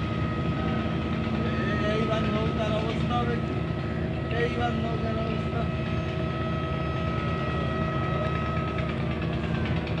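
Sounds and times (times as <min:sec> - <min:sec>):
boat engine drone: 0:00.0 - 0:10.0
thin steady whine: 0:00.0 - 0:10.0.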